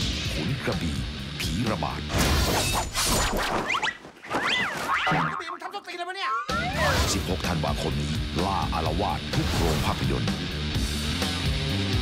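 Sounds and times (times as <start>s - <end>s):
comic wobbling sound effects: 4.4s - 5.4s
loud trailer music: 6.5s - 12.0s.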